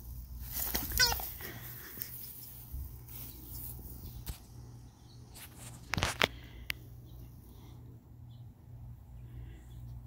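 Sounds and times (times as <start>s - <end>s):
squeaky toy ball warble: 0.9s - 1.2s.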